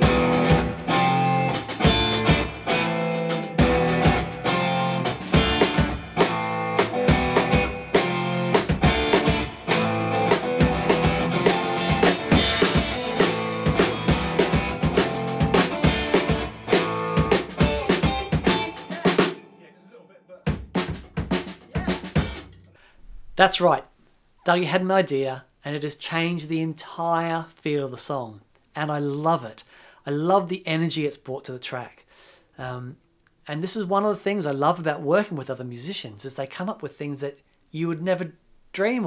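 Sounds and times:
damped drum kit: 0:00.0 - 0:19.4, 0:20.4 - 0:23.7
electric guitar playing: 0:00.0 - 0:19.6.

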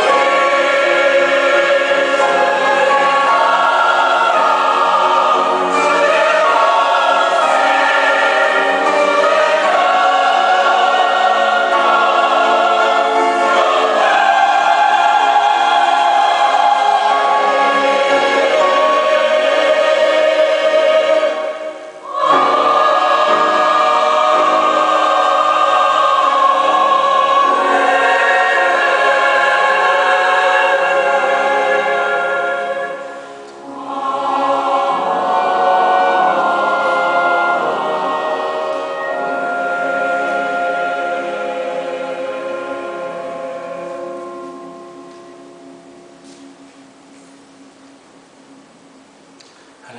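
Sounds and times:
mixed choir singing chords: 0:00.0 - 0:49.9.

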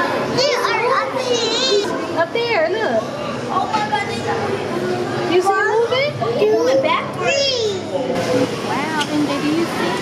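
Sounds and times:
children chattering: 0:00.0 - 0:10.0.

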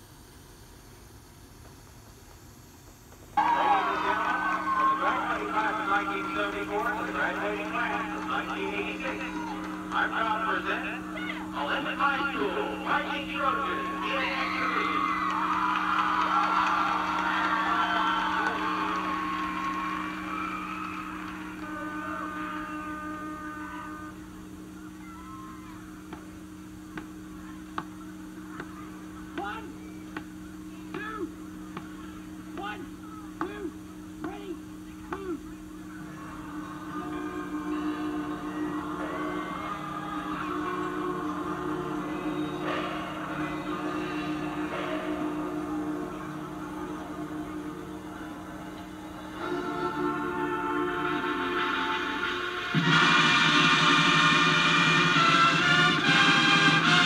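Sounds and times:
low hum: 0:00.0 - 0:57.0
crowd noise: 0:03.3 - 0:57.0
marching band playing: 0:03.4 - 0:24.3, 0:36.8 - 0:57.0
held brass chord: 0:03.4 - 0:24.9, 0:36.2 - 0:57.0.

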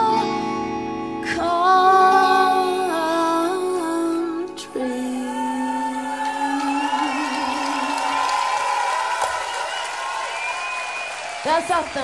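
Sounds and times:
woman singing long note: 0:01.3 - 0:08.3
crowd cheering and whooping: 0:05.0 - 0:12.0.

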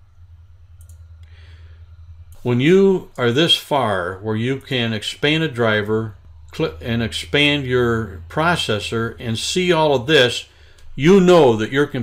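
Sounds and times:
low electrical hum: 0:00.0 - 0:12.0
computer mouse clicks: 0:00.8 - 0:01.0.

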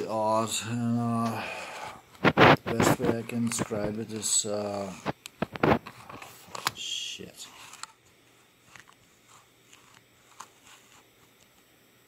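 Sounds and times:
microphone handling clicks: 0:02.2 - 0:04.2, 0:04.9 - 0:06.8.

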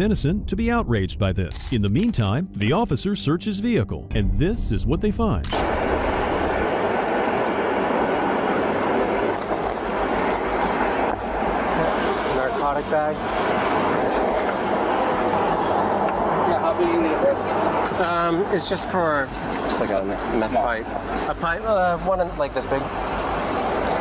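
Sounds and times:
person speaking: 0:00.0 - 0:05.6
street traffic noise: 0:05.4 - 0:24.0.

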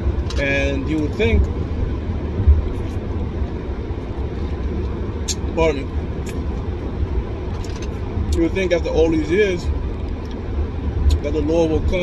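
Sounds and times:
car cabin road and engine rumble: 0:00.0 - 0:12.0
short low thump: 0:02.4 - 0:02.7.

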